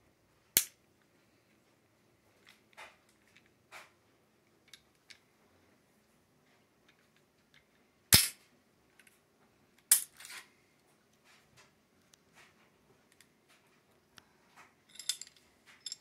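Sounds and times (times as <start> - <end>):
sharp loud snap: 8.1 - 8.4.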